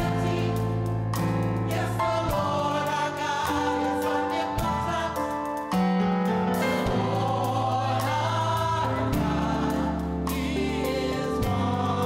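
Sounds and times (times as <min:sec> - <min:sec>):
gospel choir singing: 0:00.0 - 0:12.0
keyboard accompaniment: 0:00.0 - 0:12.0.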